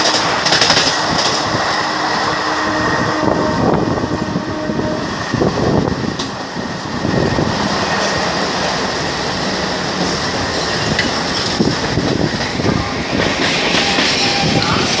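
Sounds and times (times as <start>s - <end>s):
wheels clicking over rail joints: 0.0s - 1.5s
train wheels rumbling on rail: 0.0s - 15.0s
rushing air: 0.2s - 15.0s.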